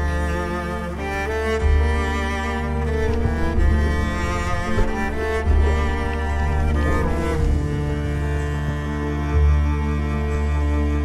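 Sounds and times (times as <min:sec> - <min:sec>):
deep held bass: 0:00.0 - 0:11.0
slow low string notes: 0:00.0 - 0:11.0.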